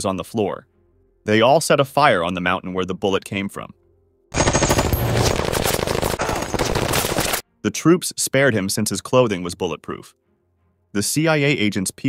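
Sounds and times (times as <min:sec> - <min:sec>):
machine gun automatic fire: 0:04.3 - 0:07.4.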